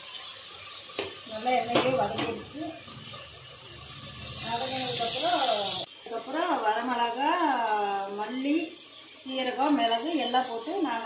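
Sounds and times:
woman talking: 0:01.3 - 0:02.8, 0:04.4 - 0:11.0.

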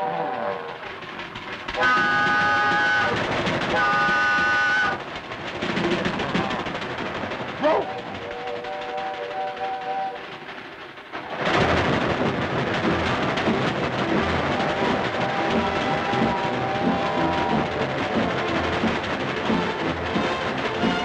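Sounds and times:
rhythmic running train noise: 0:00.0 - 0:21.0
steam whistle chord: 0:01.8 - 0:05.0, 0:07.9 - 0:10.2.

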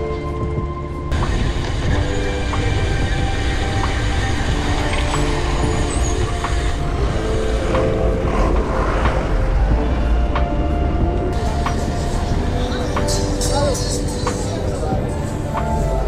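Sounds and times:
background music: 0:00.0 - 0:16.0
road traffic rumble: 0:00.0 - 0:16.0.

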